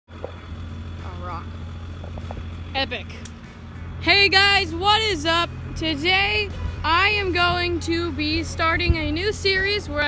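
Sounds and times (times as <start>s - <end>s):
steady low rumble: 0.1s - 10.0s.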